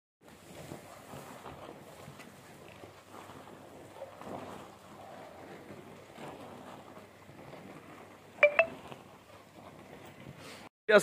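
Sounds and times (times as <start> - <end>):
juice boiling and bubbling: 0.2 - 10.4
ladle stirring through foam: 0.2 - 10.4.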